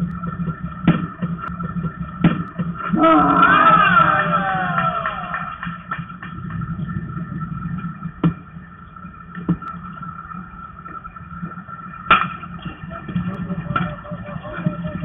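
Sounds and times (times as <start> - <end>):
steady background hum: 0.0 - 15.0.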